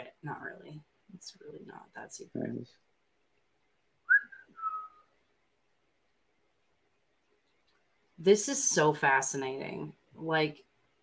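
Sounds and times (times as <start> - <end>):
person whistling two notes: 4.1 - 5.0.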